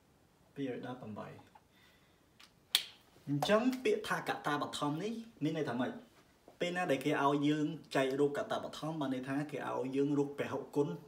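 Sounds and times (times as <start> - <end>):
man speaking: 0.6 - 1.5, 3.2 - 11.0.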